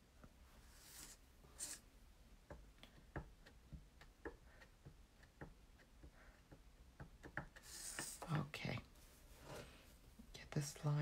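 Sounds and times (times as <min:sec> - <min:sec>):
stamp block tapping ink pad: 0:02.5 - 0:08.2.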